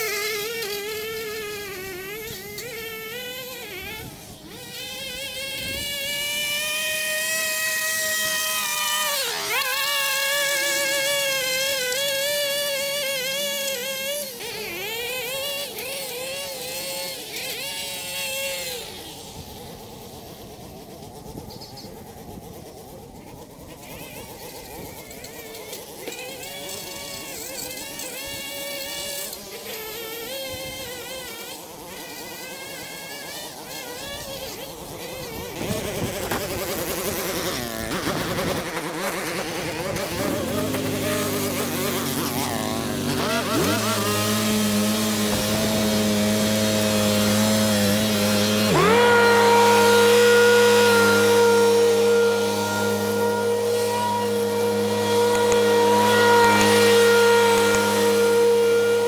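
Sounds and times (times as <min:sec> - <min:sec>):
small gas engines running: 0:00.0 - 0:59.0.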